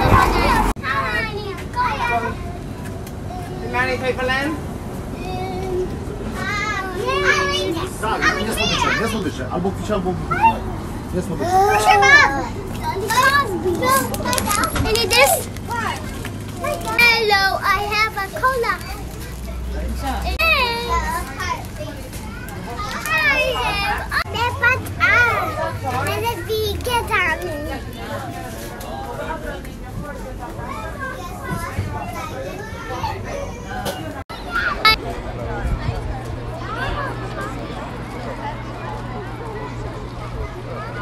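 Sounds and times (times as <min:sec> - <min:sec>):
boys talking and calling out: 0:00.0 - 0:41.0.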